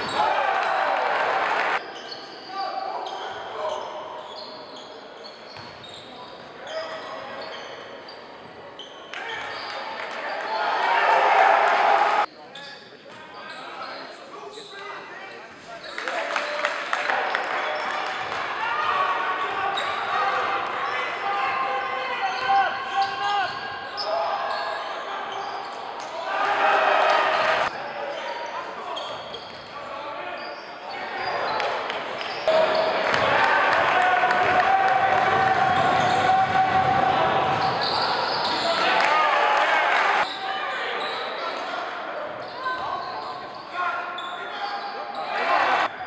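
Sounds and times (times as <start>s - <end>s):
spectators' voices and shouts: 0.0s - 1.9s, 9.2s - 12.3s, 13.9s - 29.1s, 29.8s - 46.0s.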